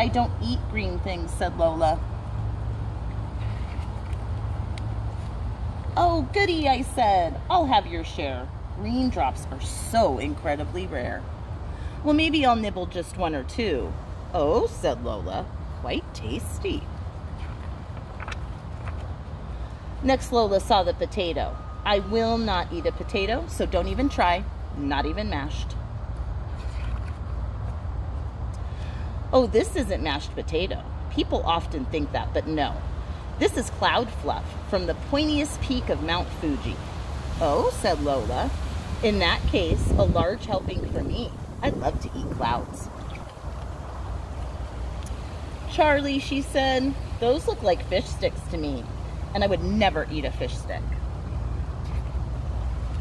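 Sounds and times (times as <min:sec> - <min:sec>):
low outdoor rumble: 0:00.0 - 0:53.0
page turning rustle: 0:03.4 - 0:04.5, 0:17.3 - 0:19.2, 0:26.5 - 0:27.8.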